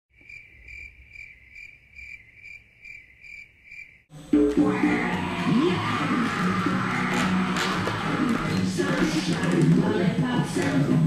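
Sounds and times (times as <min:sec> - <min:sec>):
cricket chirping: 0:00.2 - 0:04.1.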